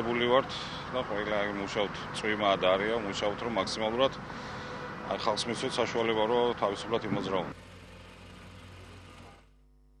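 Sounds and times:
roadwork machinery hum: 0.0s - 9.5s.

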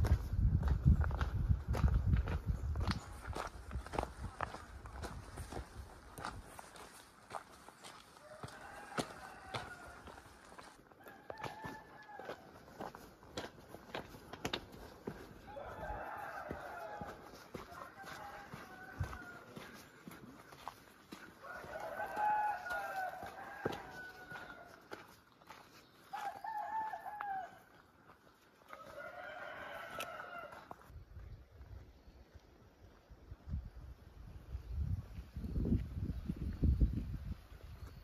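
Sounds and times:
footsteps on gravel: 0.0s - 31.4s
roosters crowing: 8.2s - 12.9s, 15.0s - 19.9s, 20.6s - 25.1s, 26.1s - 27.8s, 28.7s - 30.8s.

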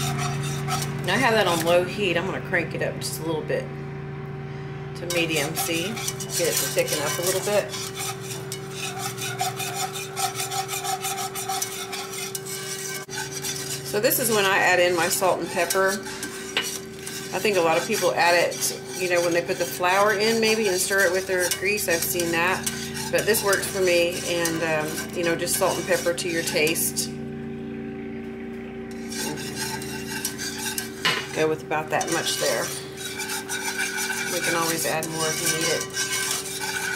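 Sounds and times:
whisk scraping a pan: 0.0s - 3.3s, 5.0s - 27.2s, 28.9s - 36.9s
steady low hum: 0.0s - 36.9s.

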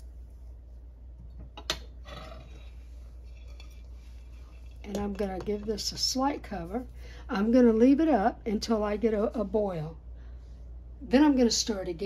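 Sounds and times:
low steady hum: 0.0s - 12.0s
spoon stirring beans in pot: 1.5s - 6.8s.

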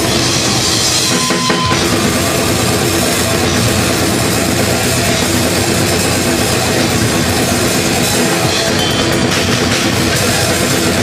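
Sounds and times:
drum kit struck hard: 0.0s - 11.0s
heavy metal band playing: 0.0s - 11.0s.

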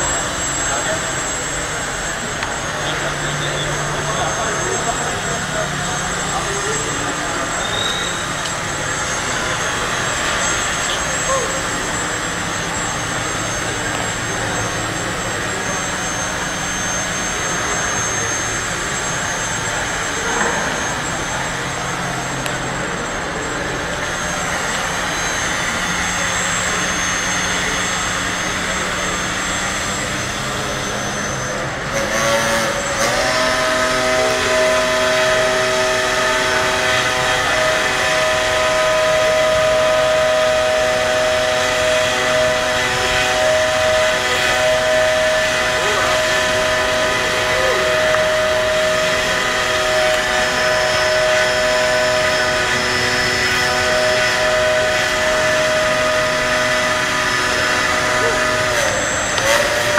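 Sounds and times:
electric fan motors whirring: 0.0s - 59.9s
high-pitched whine: 0.0s - 59.9s.

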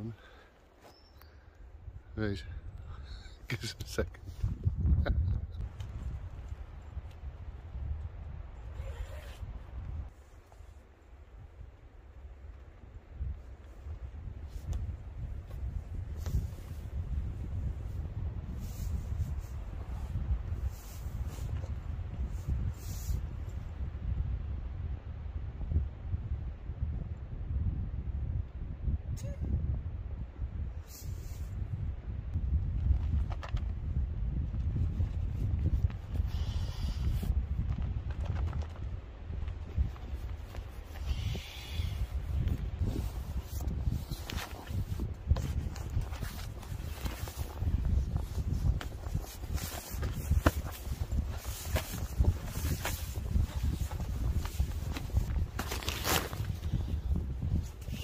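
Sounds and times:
wind rumbling on microphone: 0.0s - 58.0s
fabric rustling: 42.9s - 56.6s.

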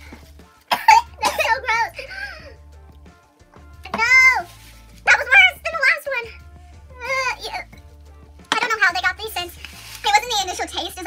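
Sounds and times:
woman coughing: 0.7s - 2.3s.

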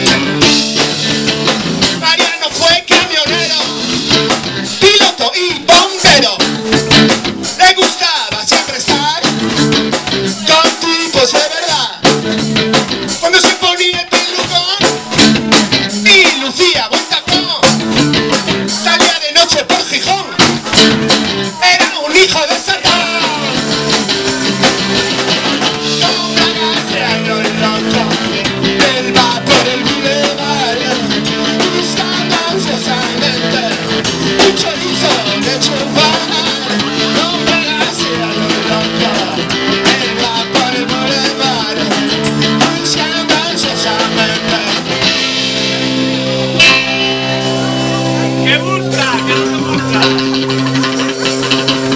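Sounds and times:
man singing: 0.0s - 0.9s, 1.9s - 6.6s, 7.5s - 9.5s, 10.2s - 12.3s, 13.1s - 17.9s, 18.6s - 24.2s, 25.5s - 45.3s, 47.2s - 51.9s
drum kit: 0.0s - 51.9s
electric bass: 0.0s - 51.9s
electric guitar chords: 0.0s - 51.9s.

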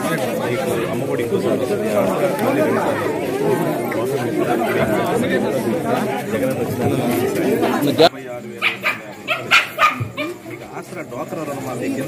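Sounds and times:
crowd chatter: 0.0s - 12.0s
dog barking: 8.6s - 10.4s.

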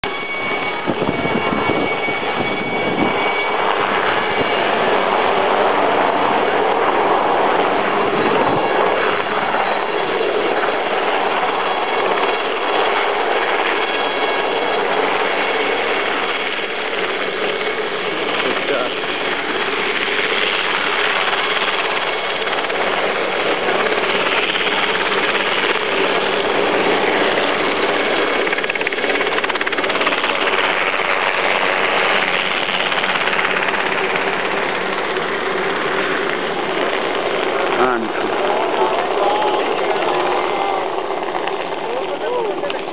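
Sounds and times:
crowd voices talking: 37.7s - 42.9s.

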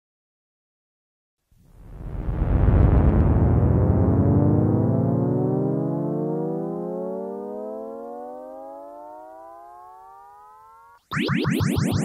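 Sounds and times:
synthesizer chord gliding upward: 3.2s - 12.0s.

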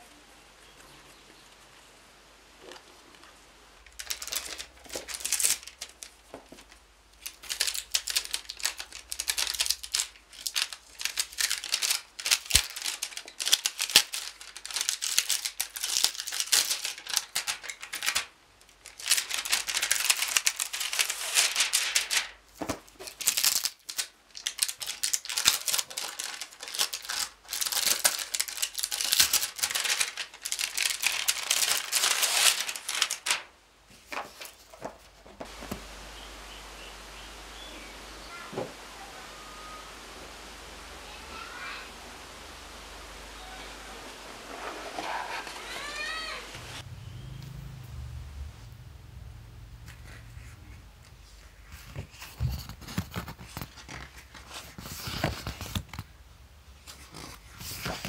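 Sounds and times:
plastic wrap crinkling and tearing: 3.9s - 35.8s, 44.2s - 46.8s, 51.7s - 56.1s, 56.8s - 58.0s.

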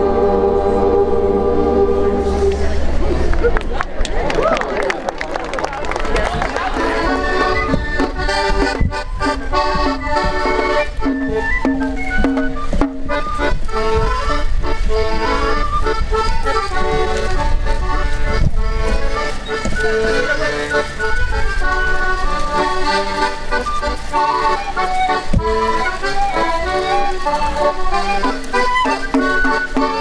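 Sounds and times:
accordion playing: 0.0s - 3.5s, 6.0s - 30.0s
voices: 0.0s - 12.7s, 15.2s - 30.0s.

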